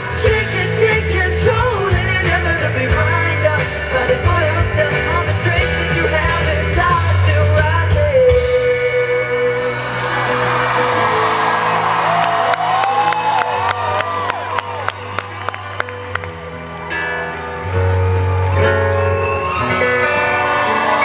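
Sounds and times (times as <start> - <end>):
live band music with vocals: 0.0 - 21.0
crowd whooping and clapping: 9.8 - 21.0.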